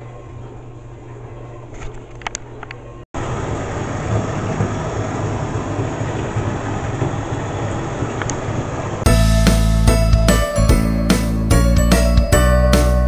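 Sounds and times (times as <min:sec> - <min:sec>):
bath tap water rushing: 0:03.3 - 0:09.0.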